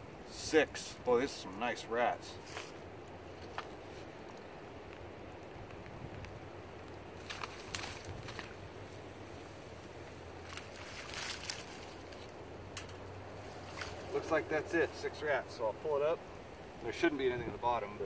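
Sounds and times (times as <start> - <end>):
faint outdoor background: 0.0 - 18.0.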